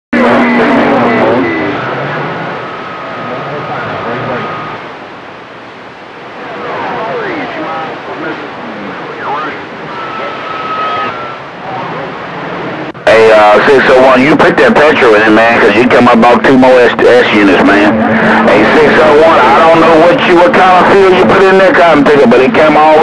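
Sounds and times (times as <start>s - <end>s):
garbled radio transmissions: 0.2s - 4.9s, 6.2s - 23.0s
radio static hiss: 0.2s - 23.0s
steady whistling tones: 9.4s - 11.5s
downward gliding whistles: 9.9s - 11.4s.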